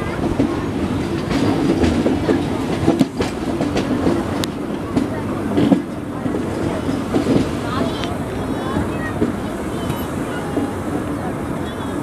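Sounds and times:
wheels clacking over rail joints: 0.0 - 11.3
train wheels rumbling on rails: 0.0 - 12.0.

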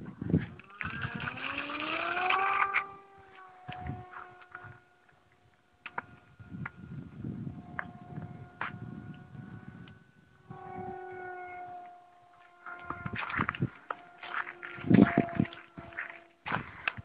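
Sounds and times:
model airplane motor whine: 0.0 - 17.0
wind buffeting microphone: 0.0 - 17.0.

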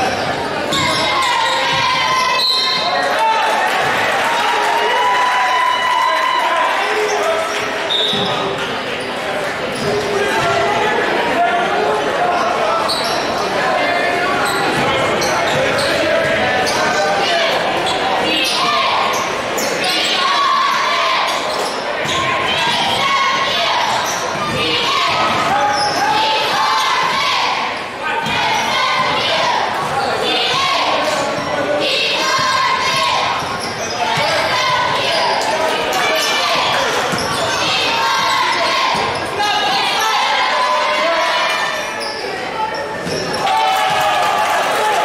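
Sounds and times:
crowd chatter: 0.0 - 45.0.

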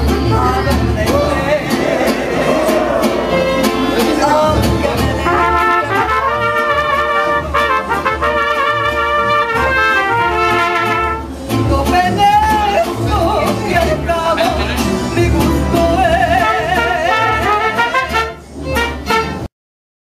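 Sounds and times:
bass guitar: 0.0 - 19.5
strummed guitar: 0.0 - 19.5
trumpets in harmony: 5.2 - 11.3, 16.3 - 19.5.

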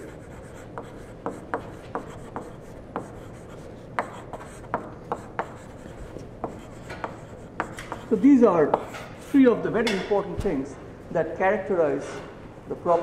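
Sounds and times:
chalk tapping and scraping on blackboard: 0.0 - 10.1.

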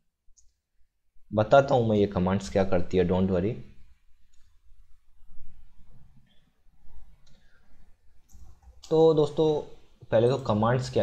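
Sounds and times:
man talking: 1.3 - 3.8, 8.8 - 11.0.

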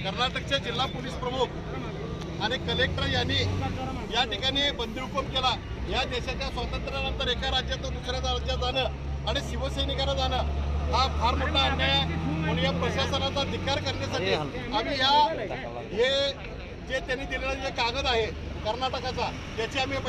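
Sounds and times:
man talking: 0.0 - 20.0
vehicle engine hum: 0.0 - 20.0.

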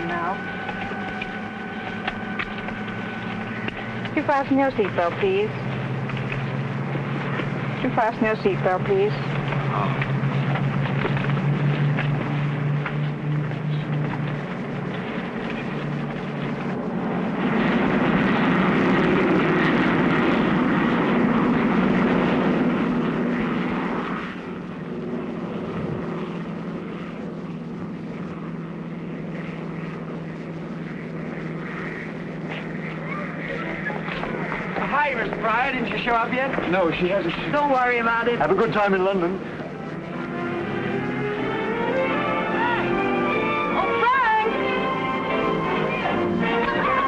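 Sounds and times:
propeller engines droning: 0.0 - 47.0.

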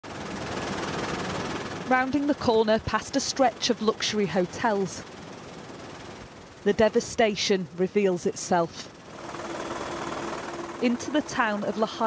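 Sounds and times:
helicopter cabin noise: 0.0 - 12.0
person speaking: 1.9 - 5.0, 6.7 - 8.9, 10.8 - 12.0.

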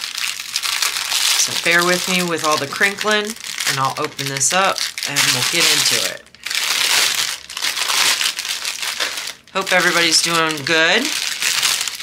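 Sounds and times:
plastic wrap crinkling: 0.0 - 12.0.

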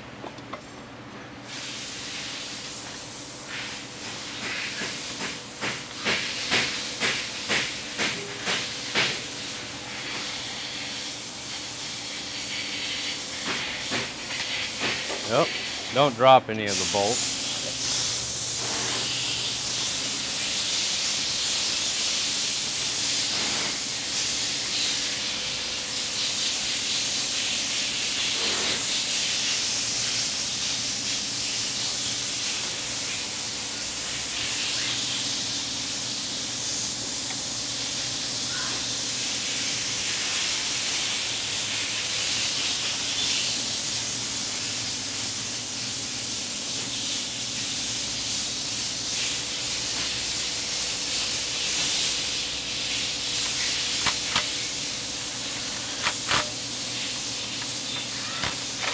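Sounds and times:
steady hiss: 1.4 - 58.9.

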